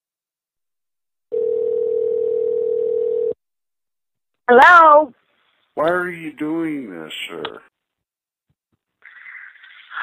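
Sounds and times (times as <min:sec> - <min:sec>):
telephone ringback tone: 0:01.3 - 0:03.4.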